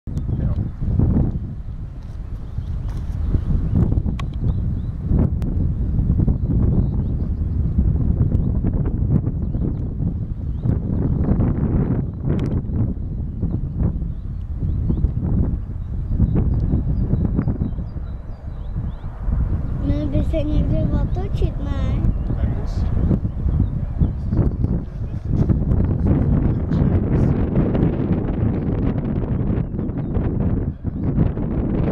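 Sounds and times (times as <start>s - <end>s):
wind buffeting microphone: 0.1s - 31.9s.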